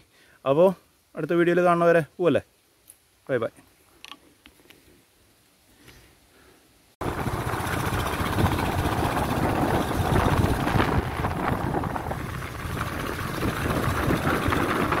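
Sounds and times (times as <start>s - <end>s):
motorcycle engine running: 7.0s - 15.0s.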